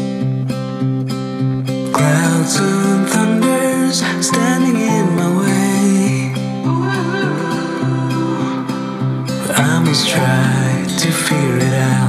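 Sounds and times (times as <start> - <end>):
acoustic guitar strumming: 0.0 - 12.0
person singing: 1.9 - 12.0.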